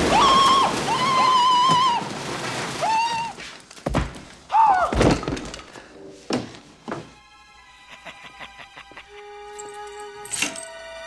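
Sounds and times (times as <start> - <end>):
soft film score music: 5.7 - 11.0.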